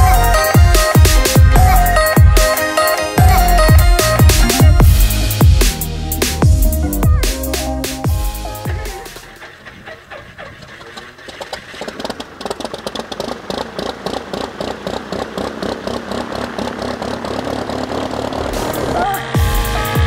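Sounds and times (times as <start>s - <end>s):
piston aircraft engine starting: 0.0s - 20.0s.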